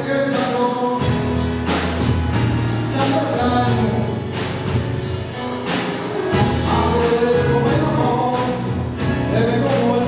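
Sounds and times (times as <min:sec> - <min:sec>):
live electro-tango band playing: 0:00.0 - 0:10.0.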